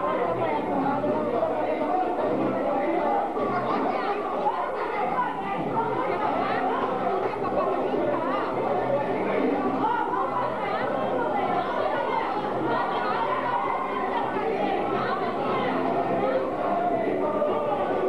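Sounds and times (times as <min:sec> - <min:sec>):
crowd chatter in a large hall: 0:00.0 - 0:18.0.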